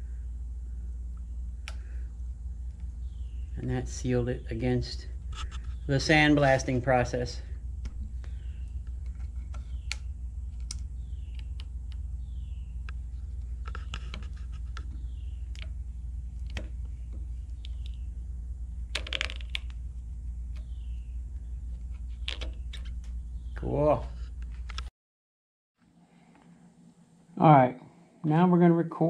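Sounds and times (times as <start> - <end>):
low hum: 0.0 - 24.9.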